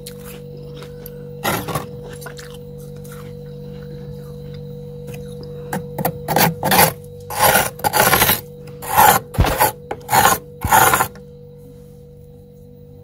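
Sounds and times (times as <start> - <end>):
spoon scraping frost: 6.0 - 11.2.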